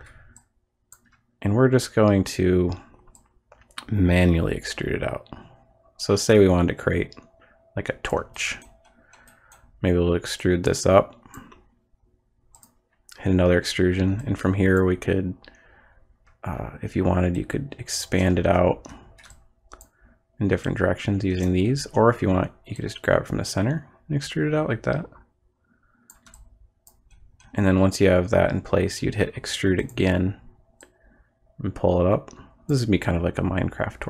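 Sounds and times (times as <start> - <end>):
computer mouse clicks: 8.3 - 9.8, 12.5 - 12.9, 18.8 - 20.0, 26.1 - 27.6.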